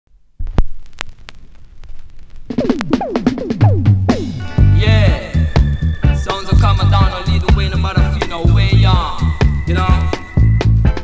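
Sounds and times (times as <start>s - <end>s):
vinyl record pops and clicks: 0.1s - 4.6s, 7.3s - 11.0s
low hum: 0.1s - 6.2s.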